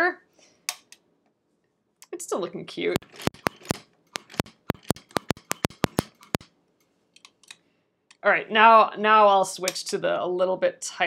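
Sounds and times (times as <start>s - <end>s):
sewing machine stitching: 3.0s - 6.4s.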